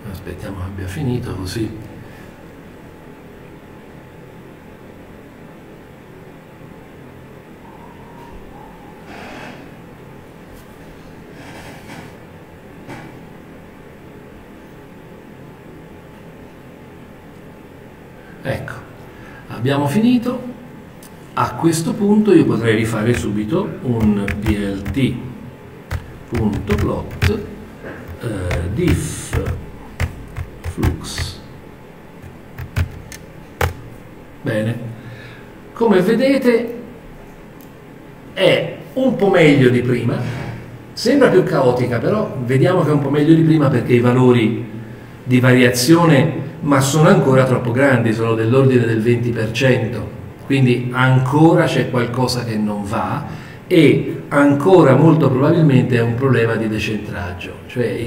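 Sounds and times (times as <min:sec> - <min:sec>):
room hum and hiss: 0:00.0 - 0:58.0
faint short tone: 0:07.6 - 0:09.1
keyboard typing: 0:23.0 - 0:25.3, 0:25.9 - 0:31.5, 0:32.2 - 0:34.0.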